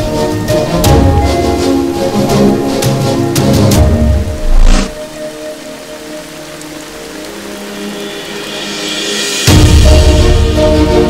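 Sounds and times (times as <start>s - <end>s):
heavy rain falling: 0.0s - 11.0s
soft background music: 0.0s - 11.0s.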